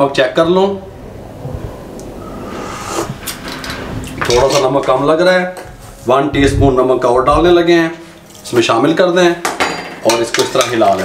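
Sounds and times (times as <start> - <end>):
person sipping: 2.3 - 3.4.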